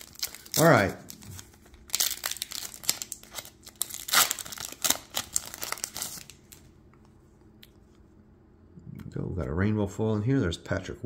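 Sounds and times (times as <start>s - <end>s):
foil wrapper tearing and crinkling: 0.0s - 6.6s.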